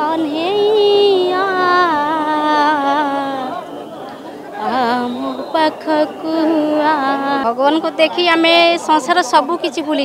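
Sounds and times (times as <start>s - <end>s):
person singing unaccompanied: 0.0s - 3.7s, 4.6s - 9.2s
crowd chatter: 0.0s - 10.0s.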